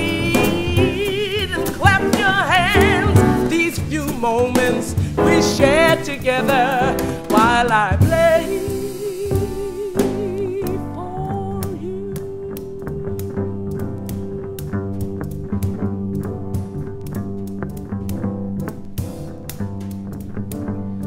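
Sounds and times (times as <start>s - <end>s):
plucked upright bass line: 0.0s - 21.0s
drum and cymbal strokes: 7.0s - 10.8s.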